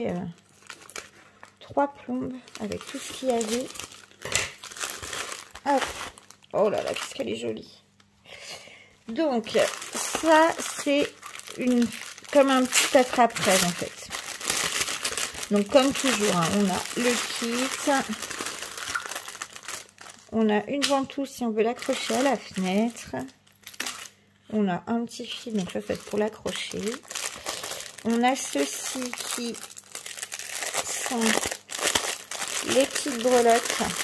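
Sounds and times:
plastic packaging crinkling: 0.0s - 7.4s, 9.1s - 24.2s, 25.2s - 34.0s.

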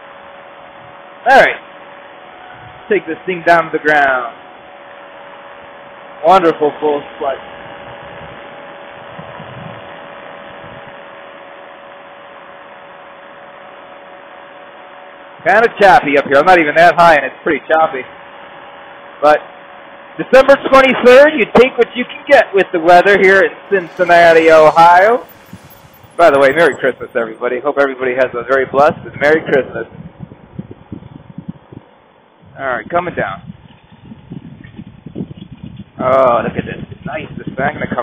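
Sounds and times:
engine and wind hiss: 0.0s - 11.9s, 23.2s - 27.6s.

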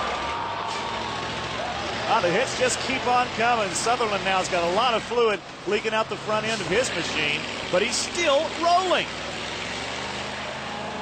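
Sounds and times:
arena crowd noise: 0.0s - 11.0s
bus engines running: 0.0s - 11.0s.

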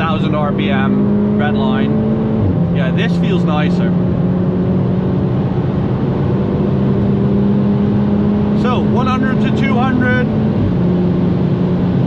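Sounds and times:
car engine accelerating: 0.0s - 12.0s.

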